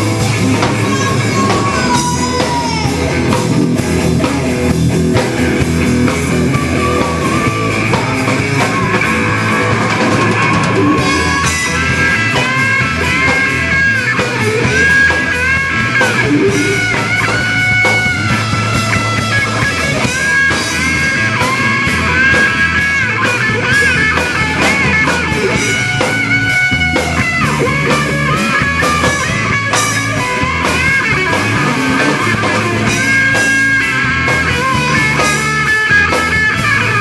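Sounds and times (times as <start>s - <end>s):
bass guitar: 0.0s - 37.0s
drum kit: 0.0s - 37.0s
electric guitar lead: 0.0s - 37.0s.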